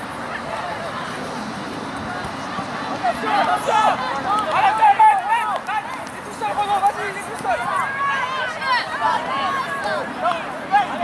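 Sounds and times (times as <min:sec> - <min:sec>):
people shouting over one another: 0:03.0 - 0:11.0.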